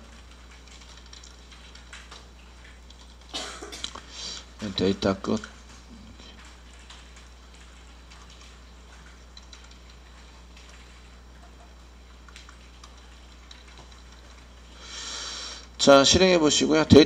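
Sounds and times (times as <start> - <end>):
steady low hum: 0.0 - 17.0
computer keyboard clicks: 0.1 - 4.0, 6.3 - 14.5.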